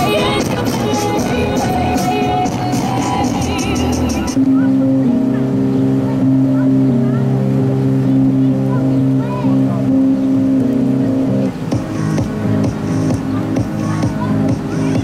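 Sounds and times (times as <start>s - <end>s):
pop drum beat: 0.0s - 4.4s, 11.7s - 15.0s
held chords: 0.0s - 15.0s.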